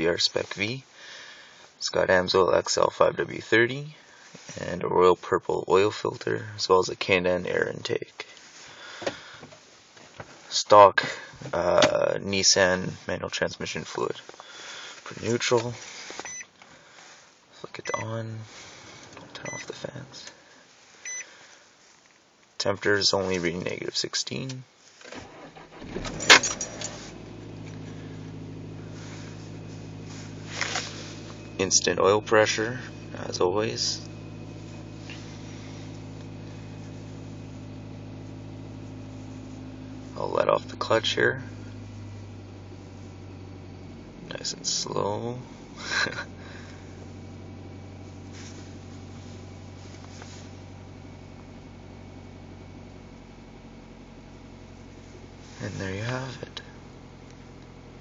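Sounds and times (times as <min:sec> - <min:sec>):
car engine starting and idling: 0:08.4 - 0:21.5, 0:24.9 - 0:58.0.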